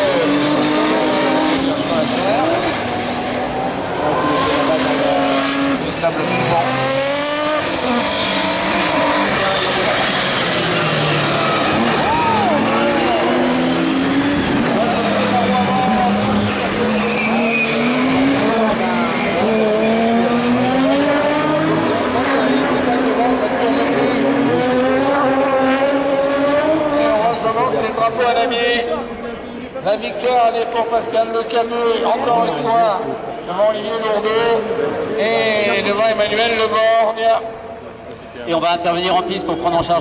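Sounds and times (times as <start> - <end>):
race car engines revving hard: 0.0 - 40.0.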